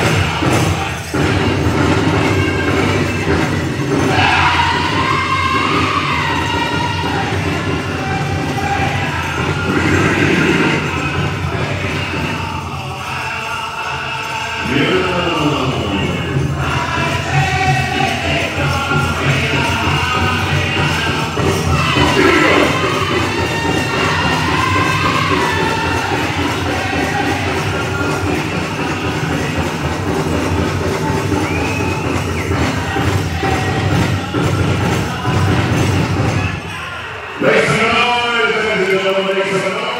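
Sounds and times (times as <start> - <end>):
steady drumbeat: 0.0 - 13.2, 14.6 - 36.8
chorus singing in high voices: 0.0 - 39.9
dancers' bells jingling: 0.0 - 39.9.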